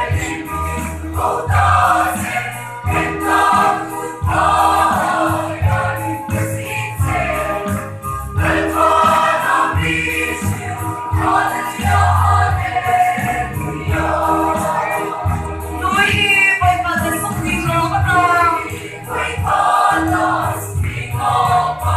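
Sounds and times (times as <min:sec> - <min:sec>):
choir singing gospel song: 0:00.0 - 0:21.9.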